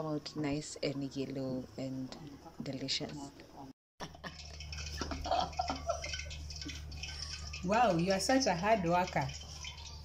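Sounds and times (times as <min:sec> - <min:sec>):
oil sizzling in a pan: 0:04.1 - 0:10.0.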